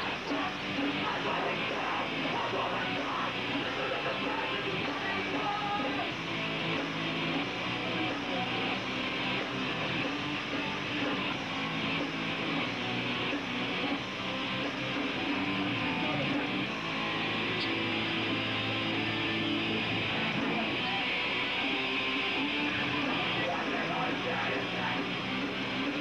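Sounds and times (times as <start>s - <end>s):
electric guitar: 0.0s - 26.0s.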